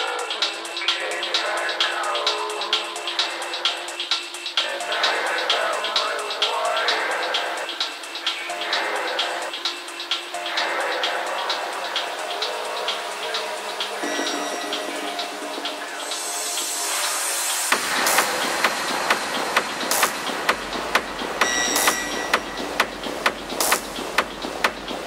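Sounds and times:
ticking hi-hats: 0.0 - 25.0
deep bass line: 17.7 - 25.0
kick drum: 17.7 - 25.0.

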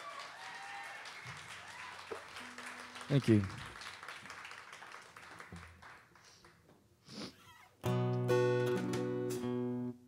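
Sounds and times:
audience applause: 0.0 - 6.6
acoustic guitar strumming: 7.8 - 10.0.

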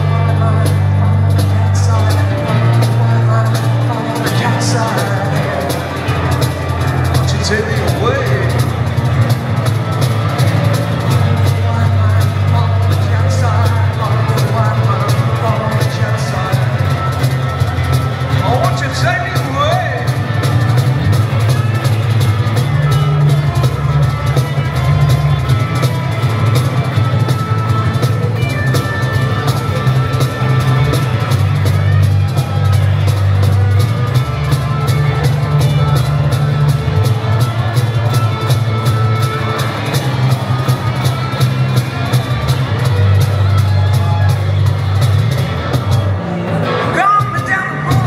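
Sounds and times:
bass guitar line: 0.0 - 48.0
cajon drum beat: 0.0 - 48.0
strummed acoustic guitar: 0.0 - 48.0.

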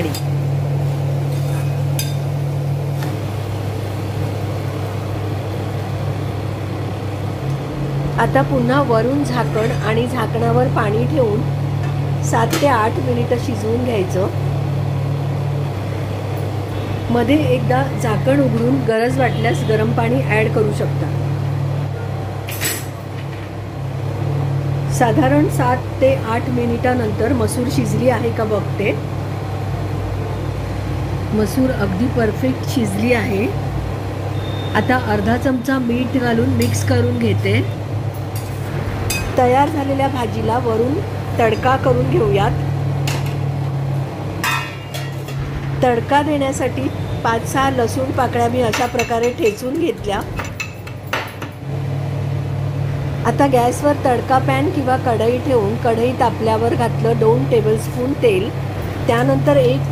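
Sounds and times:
low machine hum: 0.0 - 59.9.

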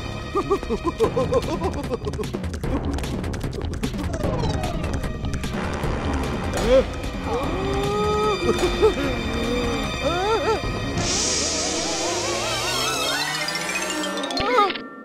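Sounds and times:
cartoon background music: 0.0 - 15.0
hissing whoosh: 11.0 - 13.2.

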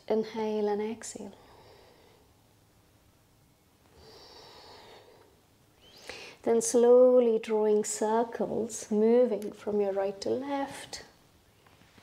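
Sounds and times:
person exhaling softly: 3.9 - 6.4.

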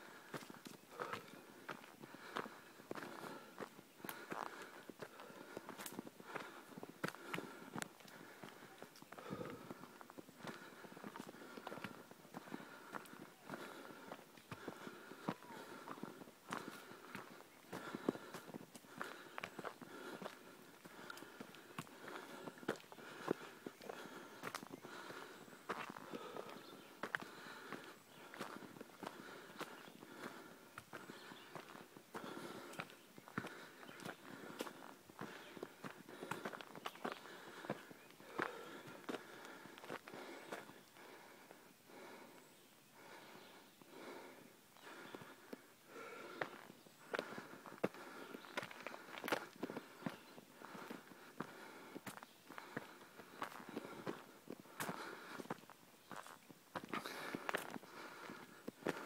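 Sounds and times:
footsteps on dirt trail: 0.0 - 42.4, 43.0 - 59.0
footsteps on dry leaves and twigs: 46.3 - 59.0.

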